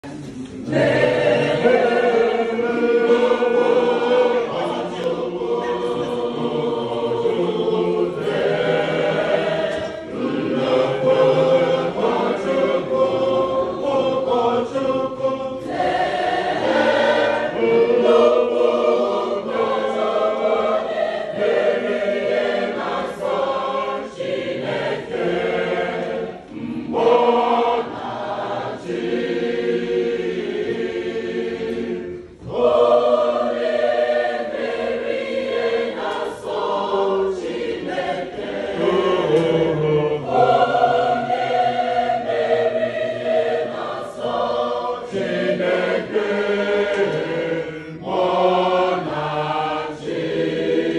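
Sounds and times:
choir singing a hymn: 0.0 - 50.9.

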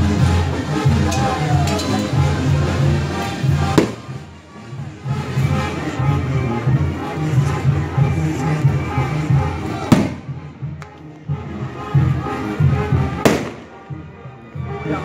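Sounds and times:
band music with bass line: 0.0 - 10.8, 11.4 - 14.0
sharp bang: 3.8 - 4.2, 13.2 - 13.8.

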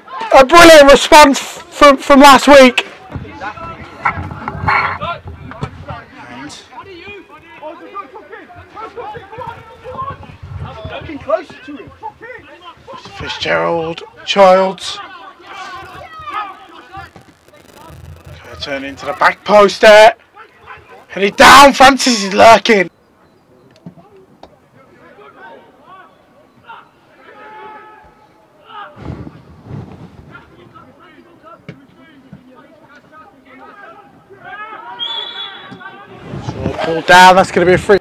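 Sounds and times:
players shouting: 0.0 - 4.2, 6.0 - 22.9, 24.8 - 29.0, 30.8 - 36.2
faint voices calling out: 2.9 - 21.5.

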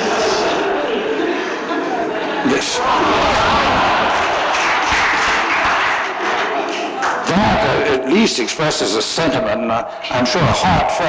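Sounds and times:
audience clapping: 2.5 - 8.7.

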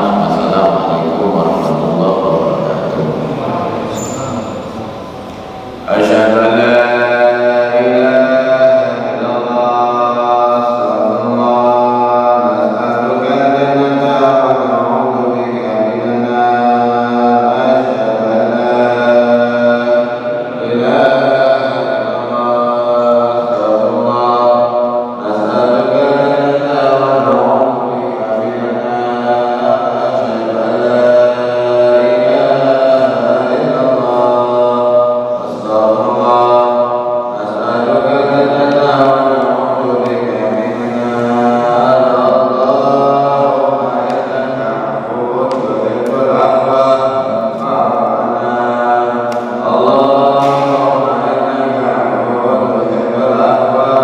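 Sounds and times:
man chanting into microphone: 0.0 - 54.0.

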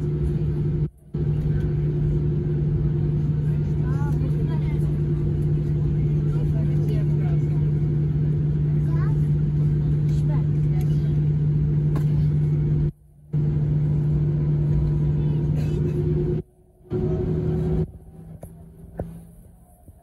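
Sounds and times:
engine and cabin air hum: 0.0 - 20.0
low drone: 0.0 - 20.0.

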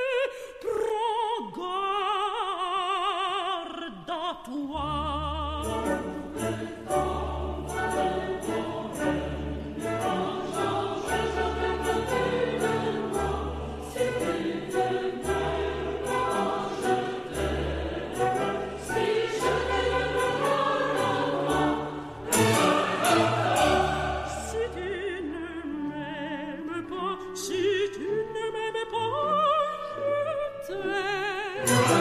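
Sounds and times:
choir singing with orchestra: 4.9 - 32.0.

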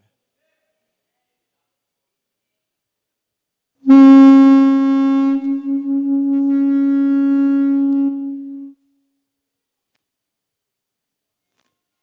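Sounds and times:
violin long low note: 3.9 - 8.8.

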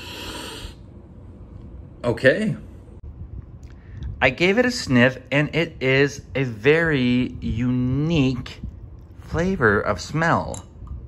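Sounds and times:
man sniffing deeply: 0.0 - 0.8.

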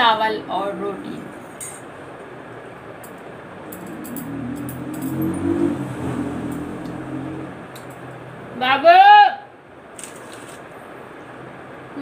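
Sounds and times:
vehicle engine passing by: 3.2 - 8.6.

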